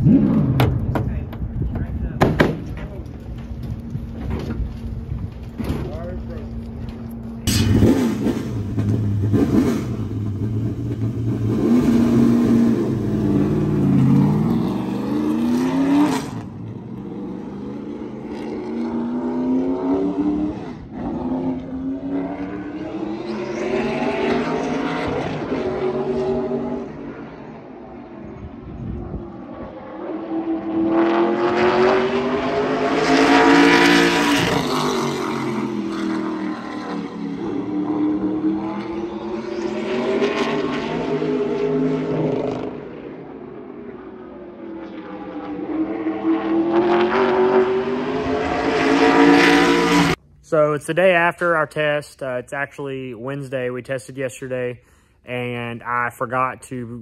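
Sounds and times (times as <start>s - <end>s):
racing car engine revving: 7.5s - 28.0s, 29.3s - 43.3s, 44.6s - 50.2s.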